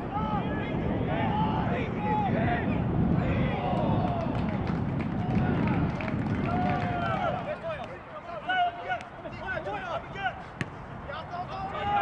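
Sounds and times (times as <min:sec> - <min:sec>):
players and spectators shouting: 0:06.5 - 0:12.0.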